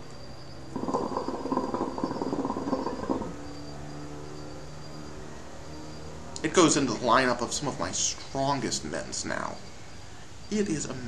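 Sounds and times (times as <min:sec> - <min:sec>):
hookah water bubbling: 0:00.7 - 0:03.4.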